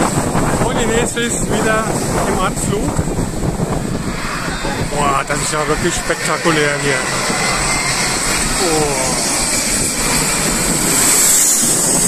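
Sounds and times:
jet aircraft passing overhead: 0.0s - 12.0s.

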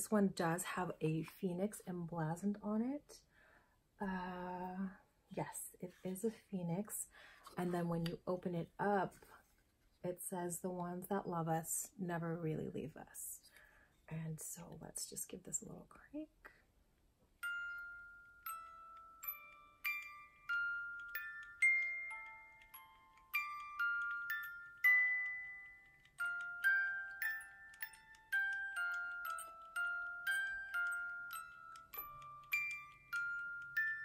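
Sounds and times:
music box melody: 17.4s - 34.0s.

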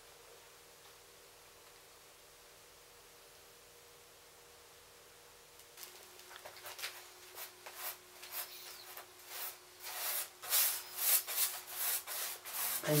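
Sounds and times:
paintbrush scrubbing on canvas: 6.6s - 13.0s.

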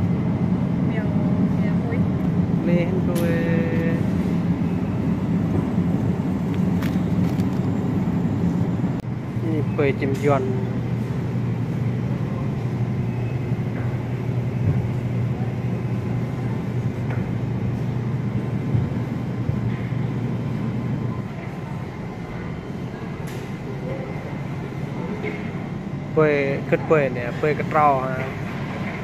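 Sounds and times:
supermarket background hum: 0.0s - 29.0s.

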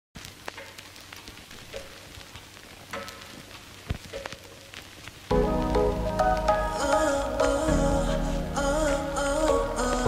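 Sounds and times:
crackles and clicks: 0.2s - 7.7s.

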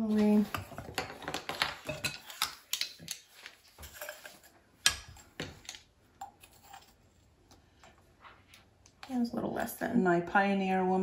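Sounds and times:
spoon scraping glass bowl: 3.8s - 4.5s, 6.3s - 7.0s.

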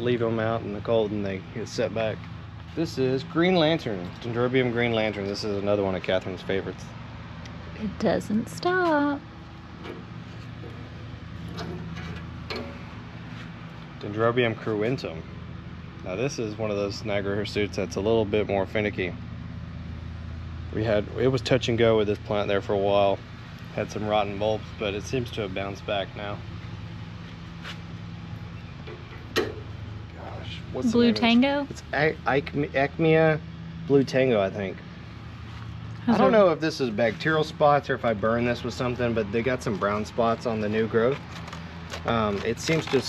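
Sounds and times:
low machine hum: 0.0s - 43.0s.

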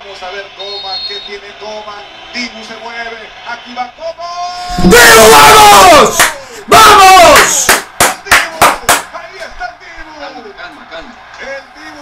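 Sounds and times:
man commentating on television: 0.0s - 12.0s.

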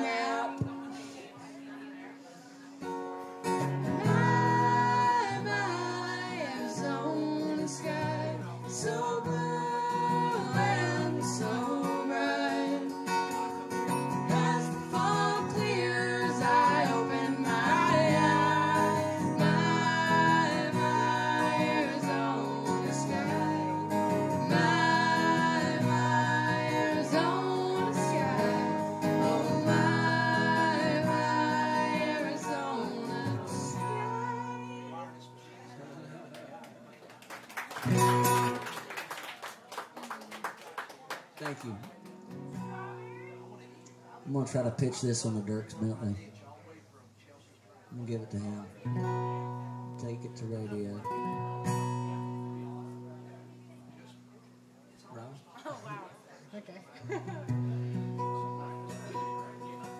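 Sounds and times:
woman singing: 0.0s - 1.2s, 3.6s - 35.1s
acoustic guitar strummed: 2.8s - 35.8s, 37.8s - 38.7s, 42.0s - 46.0s, 48.3s - 54.7s, 57.4s - 59.9s.

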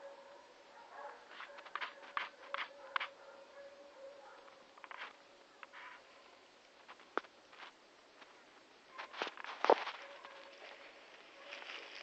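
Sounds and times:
footsteps crunching dry leaves: 9.0s - 12.0s.

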